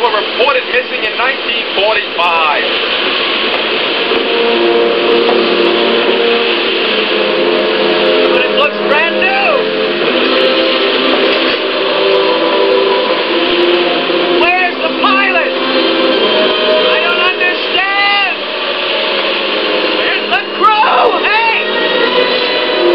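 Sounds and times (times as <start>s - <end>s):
held steady tones: 0.0s - 22.9s
rush of wind-blown dust: 0.0s - 22.9s.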